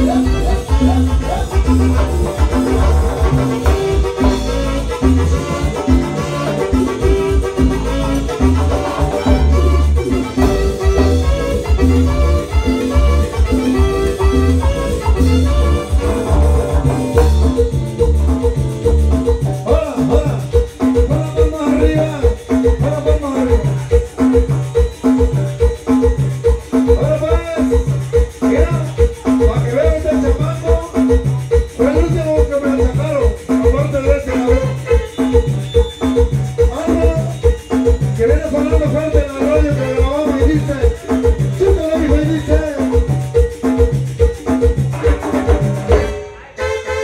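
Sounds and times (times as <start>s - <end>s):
sliding melody: 0.0s - 20.2s
pulsing bass beat: 0.0s - 46.2s
latin dance music on keyboards: 0.0s - 47.0s.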